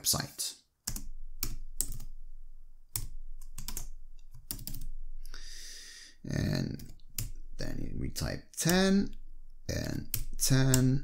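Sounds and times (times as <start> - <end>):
keyboard typing: 0.8 - 2.2, 2.9 - 5.0, 6.6 - 7.6, 9.8 - 11.0.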